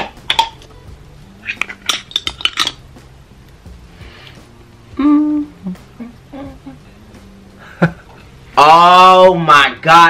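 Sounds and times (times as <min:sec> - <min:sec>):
person humming mmm: 0:04.0 - 0:07.9.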